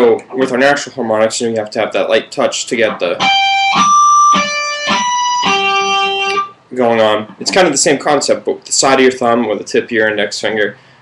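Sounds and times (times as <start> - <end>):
electric guitar harmonics: 2.9 - 7.6.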